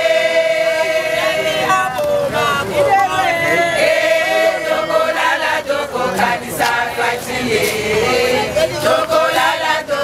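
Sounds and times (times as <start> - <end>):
women singing a chant: 0.0 - 10.0.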